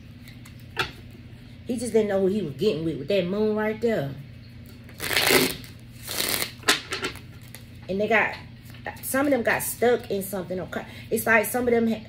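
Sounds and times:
cards being shuffled: 4.9s - 7.7s.

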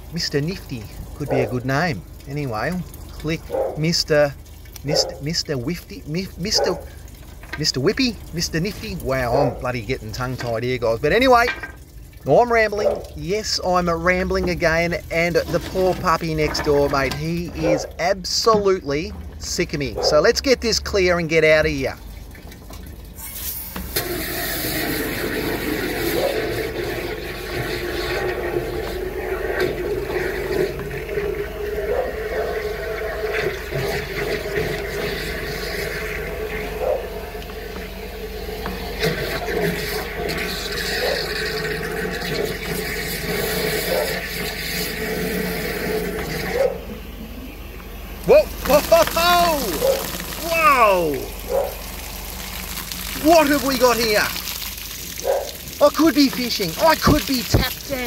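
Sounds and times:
water rushing through pipe: 0.0s - 47.3s, 48.1s - 58.0s
drain jetter running: 0.0s - 58.0s.

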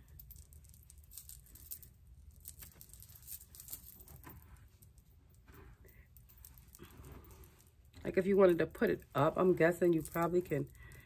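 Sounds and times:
hands rustling through hair wig: 0.4s - 10.7s.

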